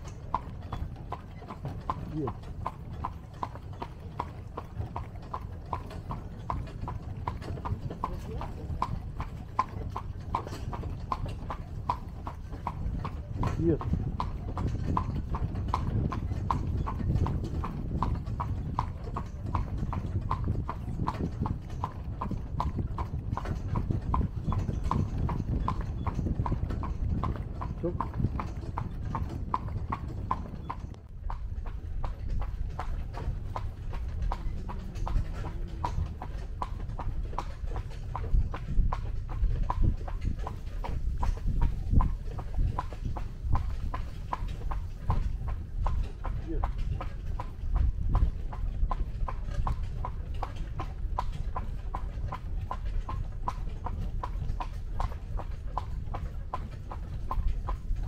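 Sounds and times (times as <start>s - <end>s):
horse hooves clip-clopping: 0.0s - 58.0s.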